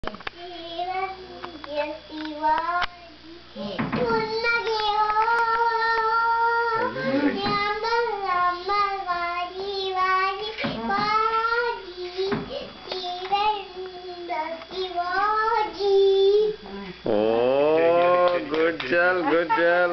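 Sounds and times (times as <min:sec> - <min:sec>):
toddler girl singing: 0:00.4 - 0:16.6.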